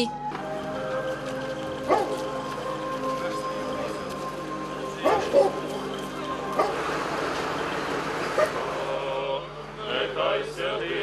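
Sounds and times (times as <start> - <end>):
street ambience: 0.0 - 11.0
group of men chanting: 6.6 - 11.0.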